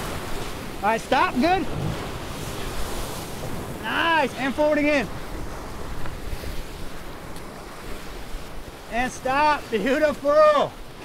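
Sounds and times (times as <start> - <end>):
river rapid rushing: 0.0 - 11.0.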